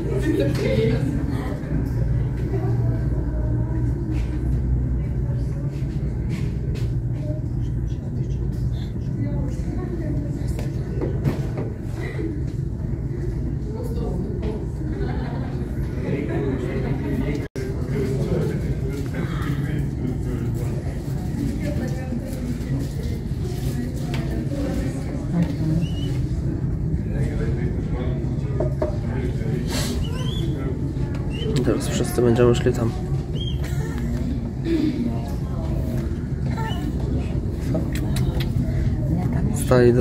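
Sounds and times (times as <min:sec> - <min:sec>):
low machinery rumble: 0:00.0 - 0:40.0
people chattering: 0:00.0 - 0:40.0
people talking: 0:00.0 - 0:40.0.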